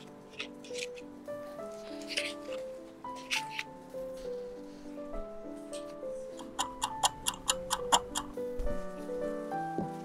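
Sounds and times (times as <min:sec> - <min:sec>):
background music: 0:00.0 - 0:10.0
clock ticking: 0:06.3 - 0:08.4.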